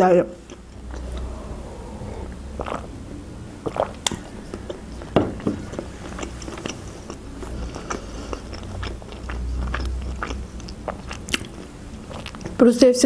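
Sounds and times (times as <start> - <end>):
close chewing with wet clicks: 3.6 - 13.0.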